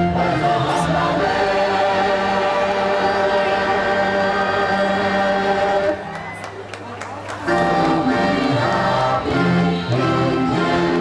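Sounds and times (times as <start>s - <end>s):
choir singing long notes: 0.0s - 6.2s, 7.5s - 11.0s.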